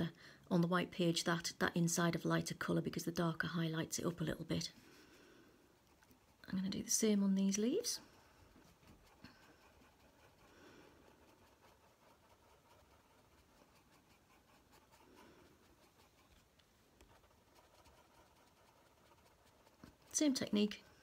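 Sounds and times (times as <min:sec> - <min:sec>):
coloured pencil scratching paper: 0:05.8 - 0:21.0.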